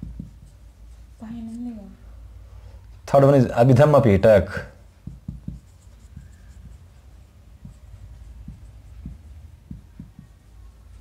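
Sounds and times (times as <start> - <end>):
marker writing on a whiteboard: 0.0 - 1.9, 3.1 - 11.0.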